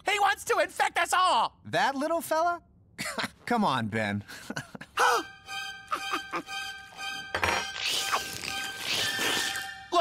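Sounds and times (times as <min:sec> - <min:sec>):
background music: 0:04.8 - 0:10.0.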